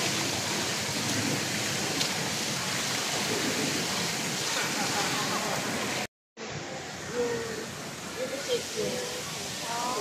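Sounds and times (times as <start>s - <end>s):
pool water splashing: 0.0s - 10.0s.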